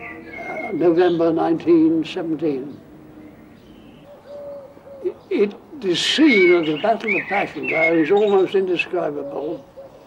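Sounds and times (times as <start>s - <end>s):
faint bird calls: 0.0s - 1.2s, 2.6s - 10.0s
low steady bird call: 0.0s - 10.0s.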